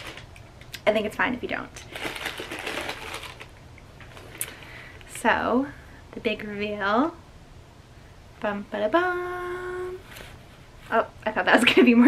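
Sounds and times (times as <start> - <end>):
fabric bag rustling: 0.0 - 0.3, 1.9 - 4.6.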